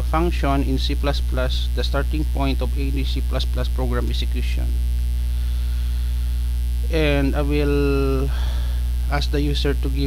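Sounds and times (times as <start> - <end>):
person speaking: 0.0 - 4.8, 6.8 - 10.0
electrical mains hum: 0.0 - 10.0.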